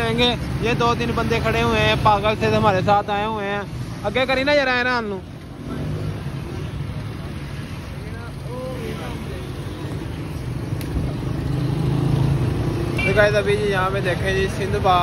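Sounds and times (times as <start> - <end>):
street traffic: 0.0 - 15.0.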